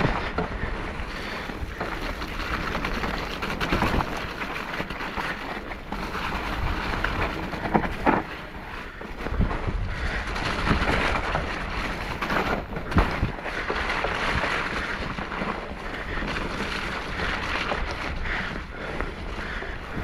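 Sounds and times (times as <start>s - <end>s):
bike knocking over bumps: 0.0s - 20.0s
bike tyre noise: 0.0s - 20.0s.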